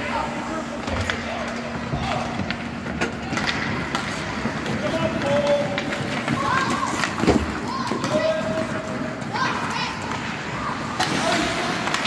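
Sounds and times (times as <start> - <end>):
skates scraping on ice: 2.2 - 12.0.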